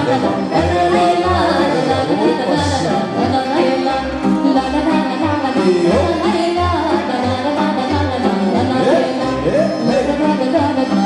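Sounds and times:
live folk dance music: 0.0 - 11.0
woman singing into microphone: 0.0 - 11.0.

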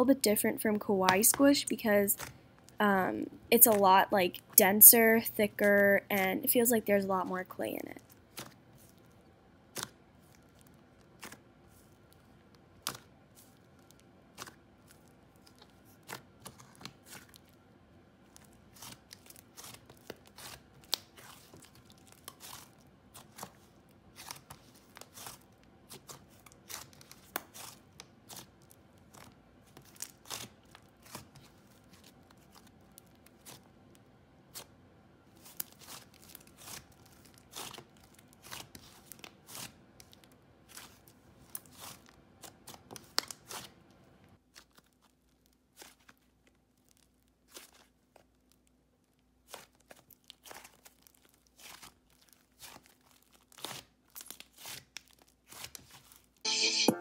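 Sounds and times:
slime clicking and crackling: 8.0 - 34.7, 35.4 - 43.7, 44.5 - 56.0.

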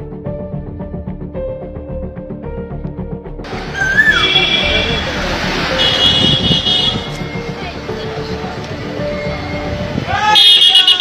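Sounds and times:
vehicles driving past: 3.4 - 11.0
vehicle horn: 3.9 - 7.2, 10.3 - 11.0.

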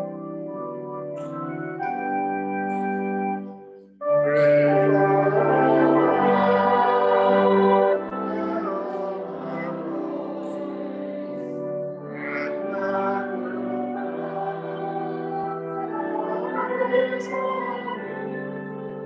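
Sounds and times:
organ playing held chords: 0.0 - 19.0.

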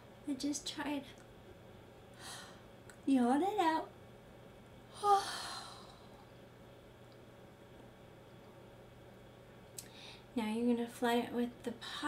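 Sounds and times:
woman yawning: 4.9 - 6.0.

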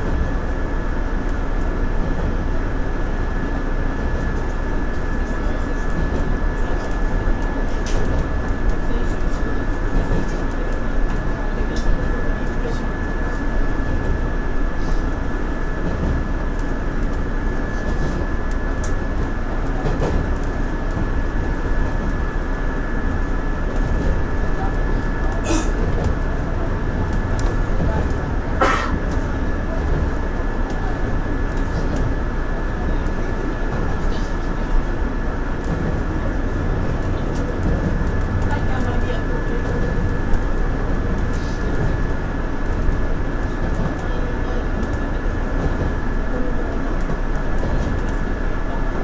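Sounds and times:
train wheels rumbling on rail: 0.0 - 49.0.

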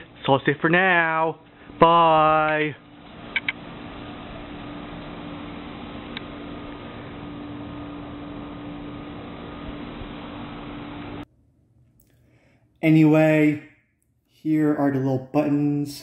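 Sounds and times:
low hum: 0.0 - 13.7.

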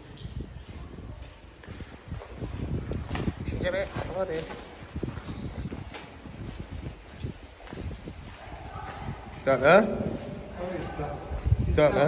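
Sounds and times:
footsteps on gritty floor: 0.0 - 12.0.

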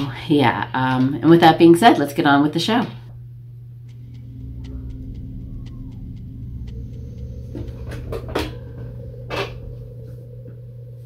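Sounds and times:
low rumbling drone: 0.0 - 11.0
steady hum: 0.0 - 11.0
faint clicks: 3.0 - 11.0.

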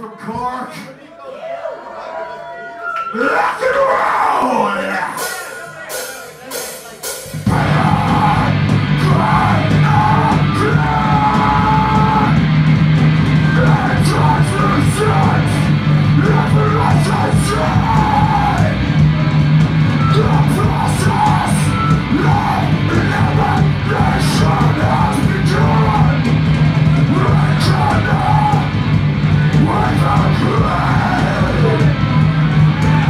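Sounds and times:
shouted vocals: 0.0 - 6.7, 7.5 - 12.5, 13.3 - 33.0
heavy metal band playing: 3.6 - 33.0.

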